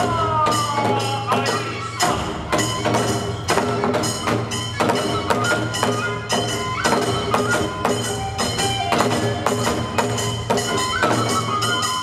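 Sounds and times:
drum and hand cymbals: 0:00.0 - 0:12.0
flute melody: 0:00.0 - 0:12.0.

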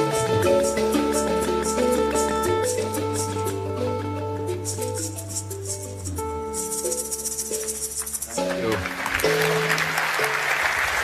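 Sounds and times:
shaker rattling: 0:00.0 - 0:03.7, 0:04.5 - 0:08.8
acoustic band playing: 0:00.0 - 0:11.0.

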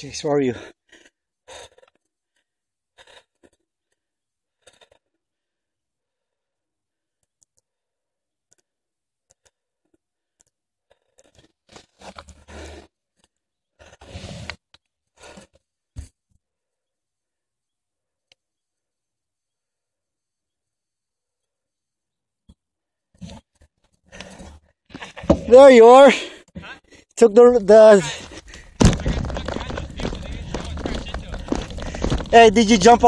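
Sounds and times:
bike rattles and clicks: 0:28.2 - 0:33.0.

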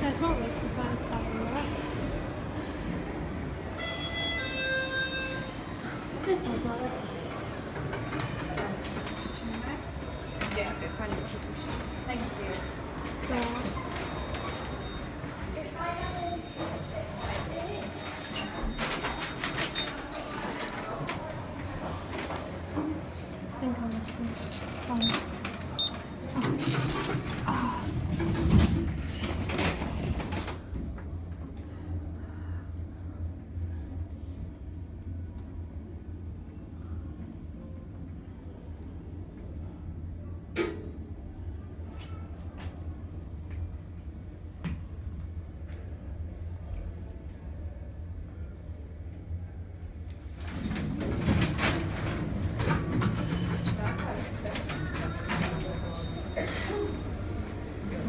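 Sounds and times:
murmur of indoor crowd: 0:00.0 - 0:58.0
faint voices: 0:51.7 - 0:58.0.

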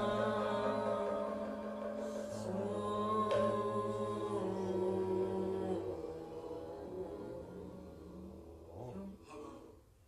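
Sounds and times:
buddhist chanting voices: 0:00.0 - 0:10.0.

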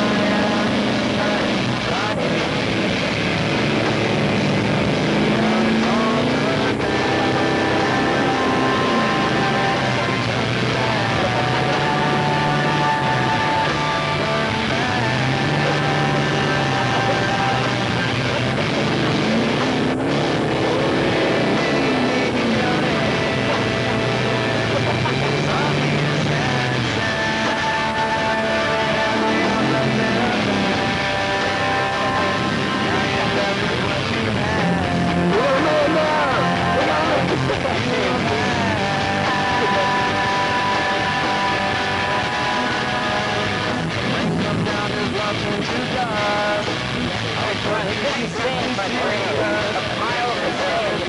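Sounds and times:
person talking indistinctly: 0:00.0 - 0:51.0
steady noisy background: 0:00.0 - 0:51.0
vehicle engine running: 0:00.0 - 0:51.0.

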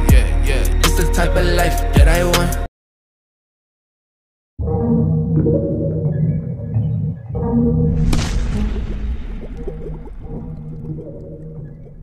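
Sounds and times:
low wavering drone tones: 0:04.6 - 0:12.0
loud hit: 0:07.9 - 0:11.5.

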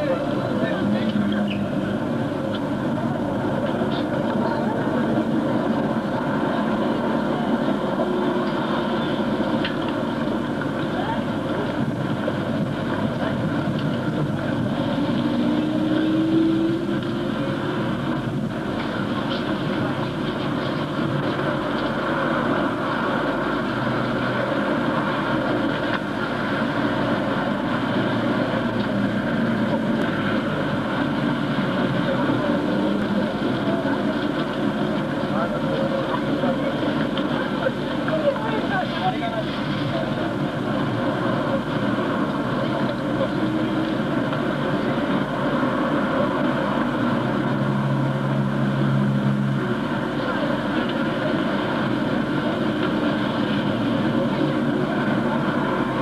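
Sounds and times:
crowd chatter: 0:00.0 - 0:56.0
road traffic noise: 0:00.0 - 0:56.0.

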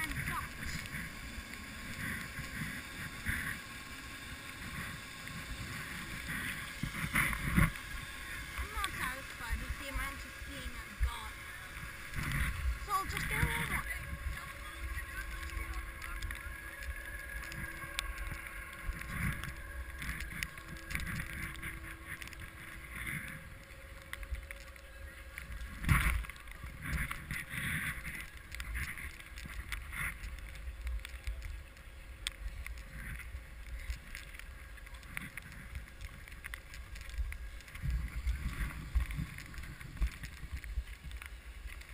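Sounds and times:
skis sliding over snow: 0:00.0 - 0:41.9
wind noise on microphone: 0:00.0 - 0:41.9.

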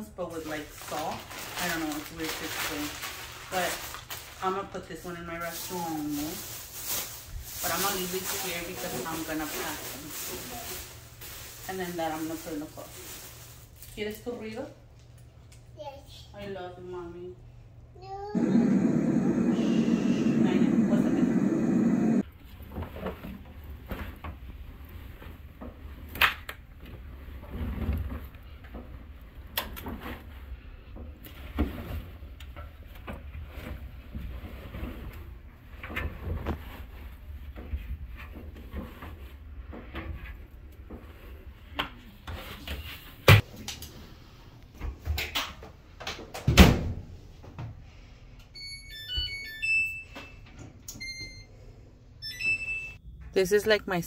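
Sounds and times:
electronic control panel beeps: 0:48.6 - 0:51.5, 0:52.2 - 0:53.1.

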